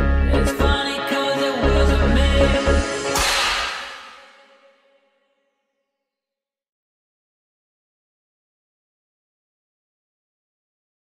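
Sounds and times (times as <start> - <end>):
cymbal crash with held note: 2.8 - 4.9.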